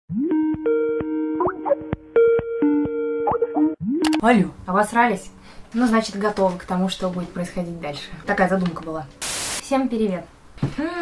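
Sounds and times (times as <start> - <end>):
bubbly plucked ringtone melody: 0.2 - 4.2.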